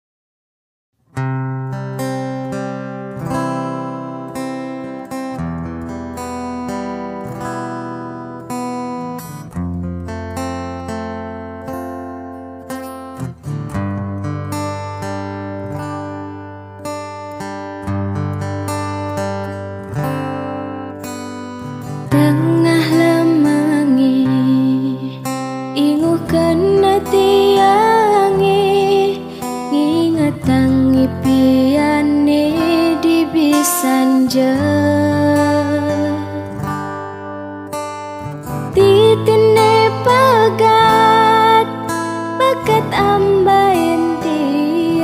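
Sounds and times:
plucked acoustic guitar: 1.1 - 45.0.

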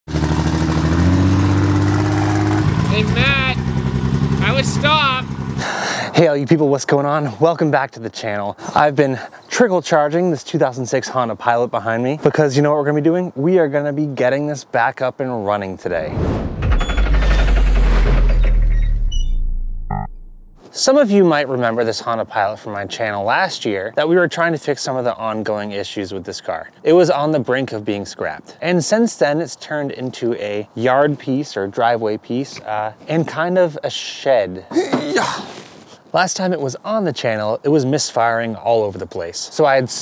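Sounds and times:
vehicle engine running loudly: 0.1 - 5.7
bass-heavy sound effect with rattle: 16.1 - 20.6.

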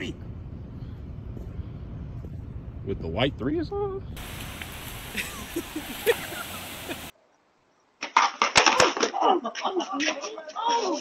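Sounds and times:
outdoor noise: 0.0 - 11.0
person laughing: 5.1 - 7.1, 9.0 - 10.4
longboard clattering on concrete: 8.0 - 11.0.

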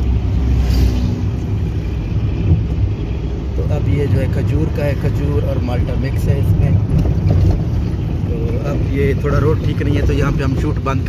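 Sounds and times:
car driving on highway from inside: 0.0 - 11.0.

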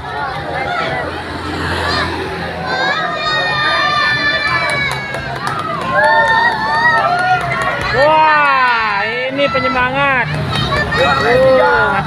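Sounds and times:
group of people shouting cheering: 0.0 - 12.0.

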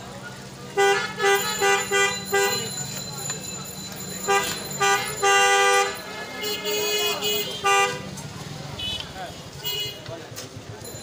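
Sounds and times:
vehicle horns honking: 0.7 - 3.0, 4.2 - 10.2.

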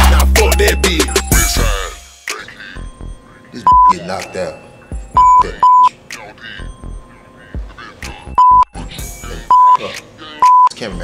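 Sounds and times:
censor bleeps: 2.8 - 4.0, 5.2 - 5.9, 8.4 - 8.7, 9.5 - 9.8, 10.4 - 10.8.

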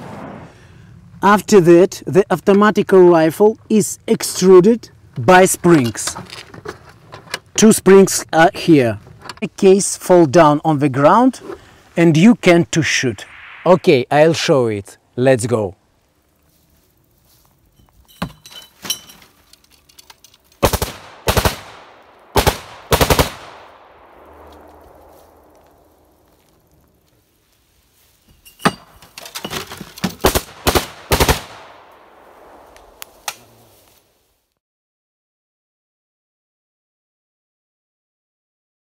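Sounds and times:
automatic rifle bursts with echo: 20.6 - 24.9, 30.2 - 31.9.

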